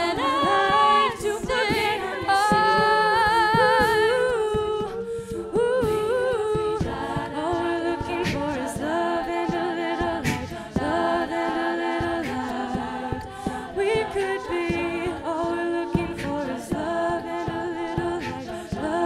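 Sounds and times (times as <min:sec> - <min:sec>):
vocal percussion hits: 0:00.0 - 0:19.0
women singing close harmony: 0:00.0 - 0:19.0.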